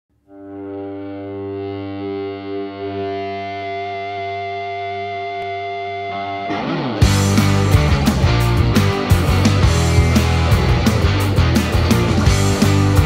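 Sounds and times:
distorted sustained guitar note: 0:00.1 - 0:13.0.

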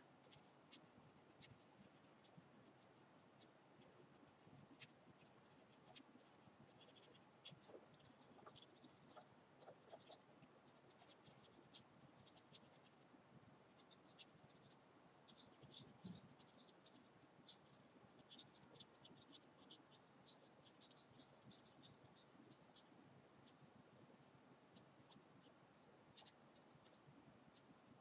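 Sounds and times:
marker pen scratching on paper: 0:00.2 - 0:13.0, 0:13.7 - 0:23.6.

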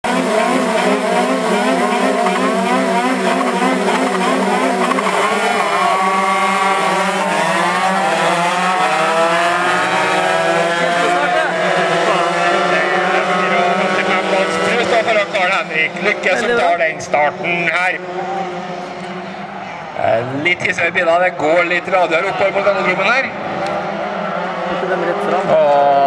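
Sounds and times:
kart engines revving: 0:00.0 - 0:26.0.

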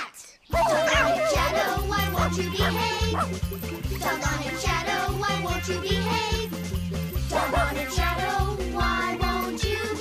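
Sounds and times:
bouncy children's music: 0:00.0 - 0:10.0
cartoon dog barking: 0:00.5 - 0:03.4.

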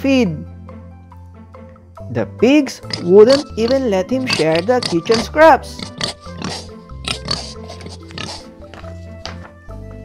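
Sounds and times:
light background music: 0:00.0 - 0:10.0
pig oinks and grunts: 0:02.8 - 0:08.9.

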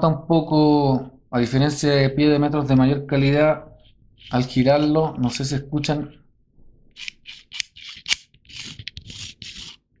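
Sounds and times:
caliper jaw scraping along beam: 0:04.2 - 0:05.0, 0:07.0 - 0:09.8.

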